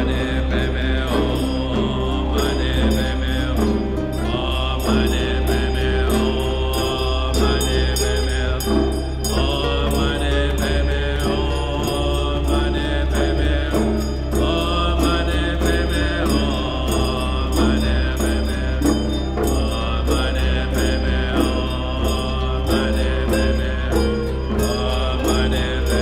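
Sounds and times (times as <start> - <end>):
man chanting: 0.0 - 26.0
steady low drone: 0.0 - 26.0.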